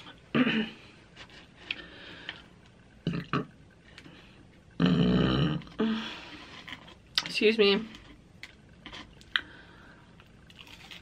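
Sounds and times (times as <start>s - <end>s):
woman burping: 0.3s - 0.8s, 3.0s - 3.6s.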